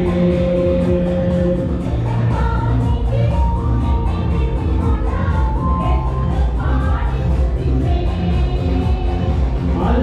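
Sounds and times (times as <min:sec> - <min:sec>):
amplified backing music: 0:00.0 - 0:10.0.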